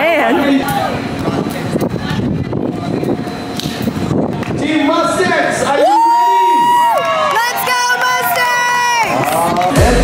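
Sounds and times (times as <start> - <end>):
person shouting drawn-out cheers: 5.8 - 7.5.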